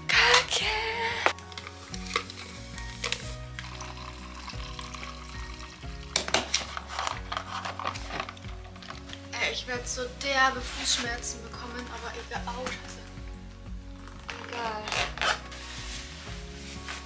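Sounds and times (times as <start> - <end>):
background music: 0.0 - 17.0
hot water pouring into a cup: 1.8 - 9.0.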